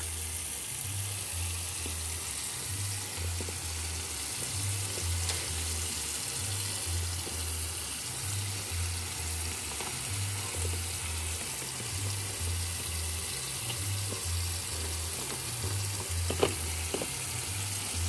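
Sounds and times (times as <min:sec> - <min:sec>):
tap running into steel sink: 0:13.5 - 0:17.3.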